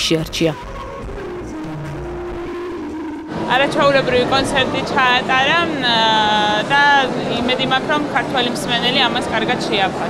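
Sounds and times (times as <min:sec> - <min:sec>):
voice with wavering pitch: 0:03.3 - 0:10.0.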